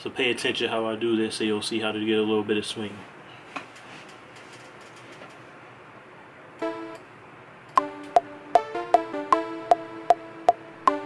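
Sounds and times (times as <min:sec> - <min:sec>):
plucky synth lead melody: 0:06.6 - 0:07.0, 0:07.8 - 0:11.0.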